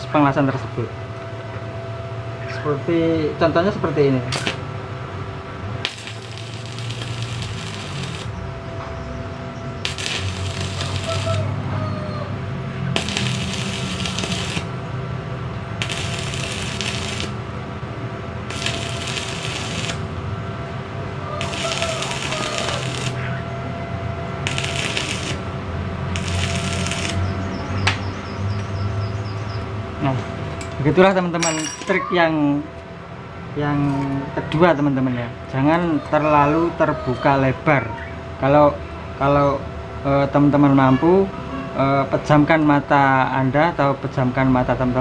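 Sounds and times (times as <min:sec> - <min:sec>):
steady electrical hum: 0:00.0 - 0:45.0
welding arc crackling and sizzling: 0:04.3 - 0:04.7, 0:05.8 - 0:08.4, 0:09.8 - 0:11.6, 0:12.8 - 0:17.6, 0:18.4 - 0:20.3, 0:21.2 - 0:23.4, 0:24.4 - 0:27.7.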